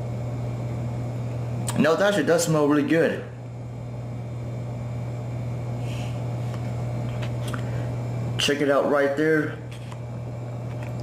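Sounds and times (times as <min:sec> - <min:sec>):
low machine hum: 0:00.0 - 0:11.0
person sniffing: 0:05.8 - 0:06.2.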